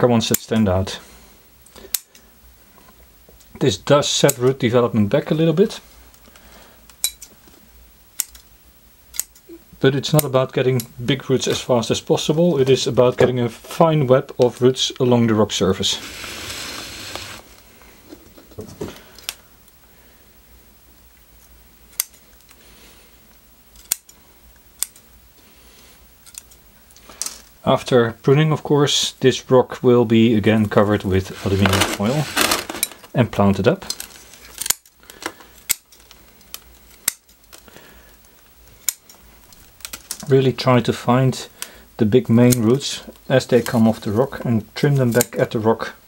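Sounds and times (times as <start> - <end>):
fingers rustling roots and soil: 31.0 - 33.2.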